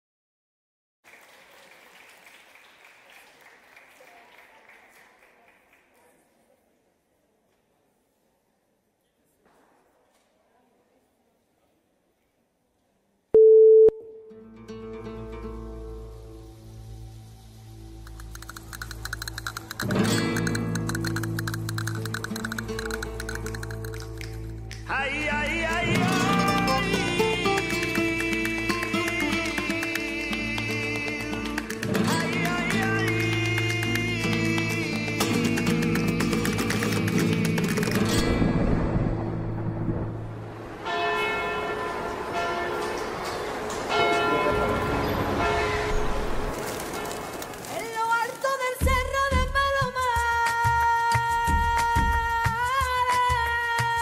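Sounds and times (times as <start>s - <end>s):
electronic beep: 13.4s - 14.1s.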